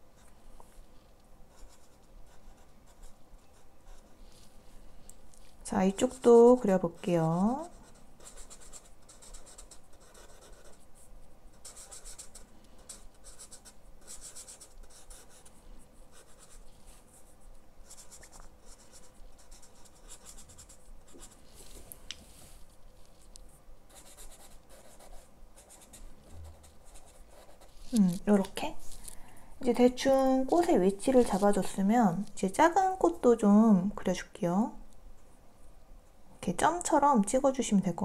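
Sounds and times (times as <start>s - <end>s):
marker scratching on paper: 1.5s - 4.1s, 5.8s - 21.4s, 23.9s - 28.5s, 30.5s - 31.8s.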